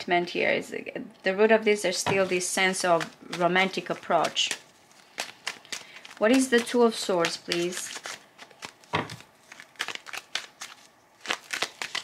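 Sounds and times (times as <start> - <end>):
cards being shuffled: 2.1 - 12.0.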